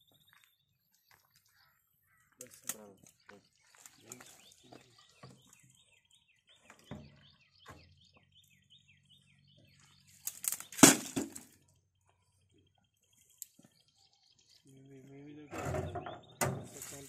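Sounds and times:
bird chirping: 0.0 - 17.0.

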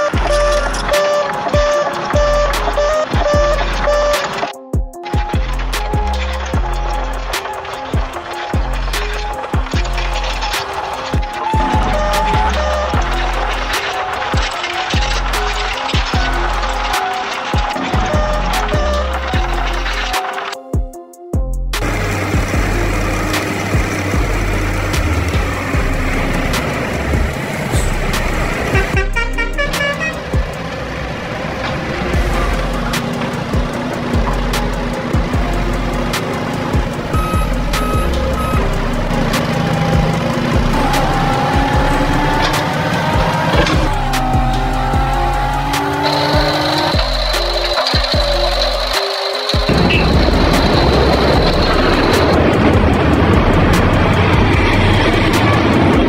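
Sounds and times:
cartoon vehicle engines: 0.0 - 20.6, 21.8 - 56.0
background music: 0.0 - 56.0
engine whine: 21.8 - 56.0.

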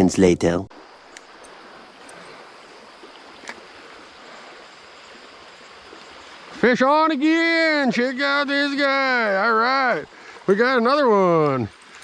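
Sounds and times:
creek water rushing: 0.7 - 12.0
faint sharp click: 1.1 - 1.6, 3.4 - 3.6.

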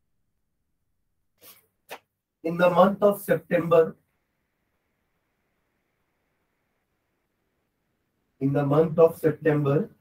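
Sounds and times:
person speaking: 1.4 - 4.0, 8.4 - 10.0.

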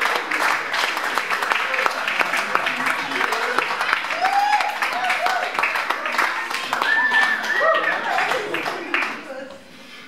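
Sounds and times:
audience clapping: 0.0 - 9.7.

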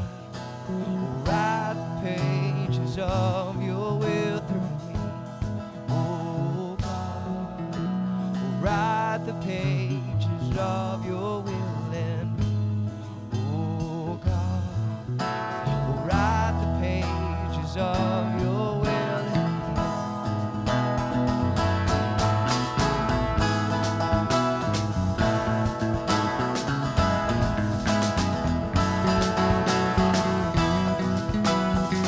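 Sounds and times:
acoustic guitar strumming: 0.0 - 32.0
electric bass line: 0.0 - 32.0.

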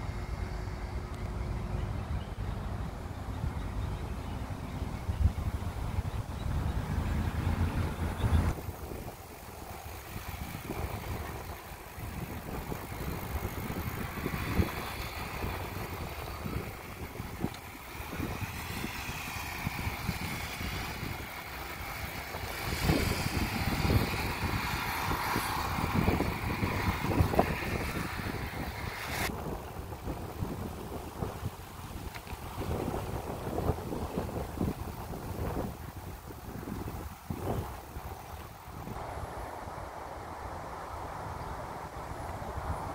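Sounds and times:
bicycle tyre rumble: 0.0 - 42.9
wind buffeting microphone: 0.0 - 42.9
small knocks from bicycle: 32.0 - 32.4.

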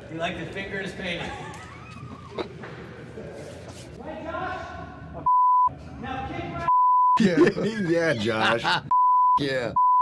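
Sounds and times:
censor bleeps: 5.3 - 5.7, 6.7 - 7.2, 8.9 - 10.0
person speaking: 7.2 - 8.9.

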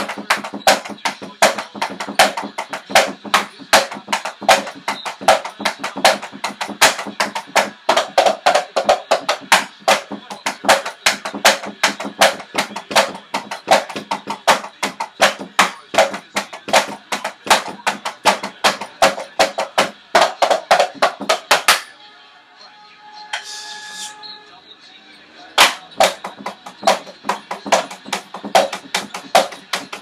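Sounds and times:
drumsticks hitting rubber pads: 0.0 - 21.9, 25.6 - 30.0.

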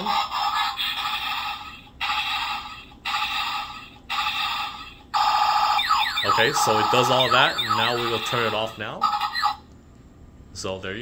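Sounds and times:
electronic toy sound effect: 0.0 - 9.6.

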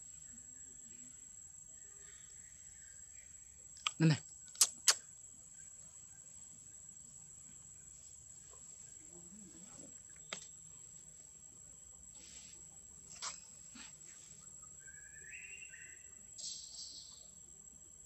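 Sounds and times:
sharp clicks: 3.8 - 5.0.

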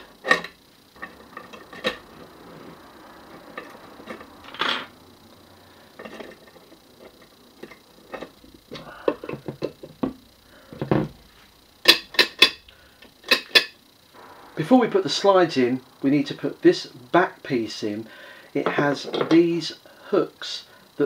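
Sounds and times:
metal parts clicking and tapping: 0.0 - 2.1, 6.0 - 10.2, 11.8 - 13.8.

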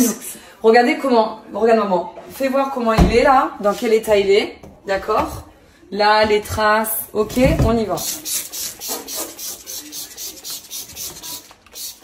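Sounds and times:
cleaner squirting from squeeze bottle: 7.9 - 12.0.

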